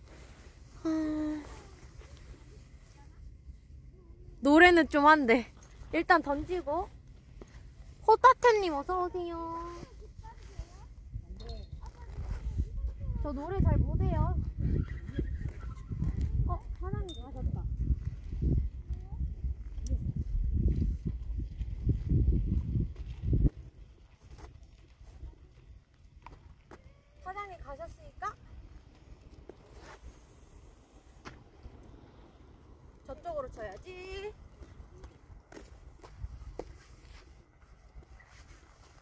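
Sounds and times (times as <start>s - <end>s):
woman's voice: 4.4s - 6.9s, 8.0s - 10.0s, 33.1s - 34.4s
wind rumbling on microphone: 5.7s - 39.0s.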